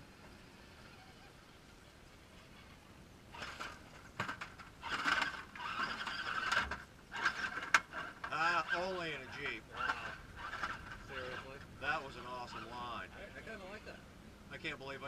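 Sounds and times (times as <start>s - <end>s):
toy car motor whining: 4.8s - 11.6s.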